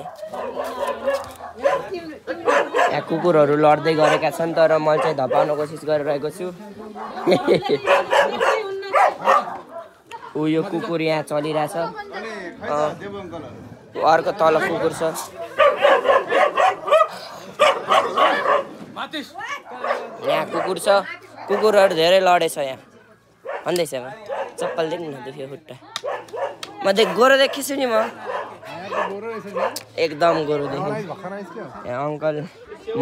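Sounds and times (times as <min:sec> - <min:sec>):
dog barking: 0:00.0 - 0:03.1, 0:03.9 - 0:05.7, 0:07.0 - 0:10.0, 0:15.4 - 0:18.8, 0:19.6 - 0:22.0, 0:23.4 - 0:25.0, 0:26.0 - 0:29.8
people's voices: 0:00.0 - 0:33.0.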